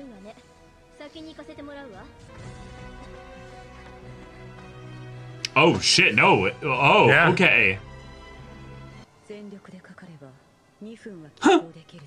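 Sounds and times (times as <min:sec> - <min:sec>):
man speaking: 0:05.5 - 0:07.8
man's sharp huh: 0:05.5 - 0:07.8.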